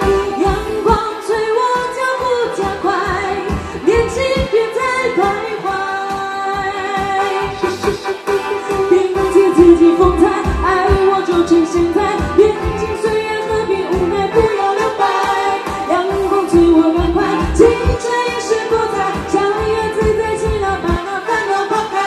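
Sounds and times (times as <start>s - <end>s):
backing music with steady beat: 0.0s - 22.0s
woman singing pop song: 0.0s - 22.0s.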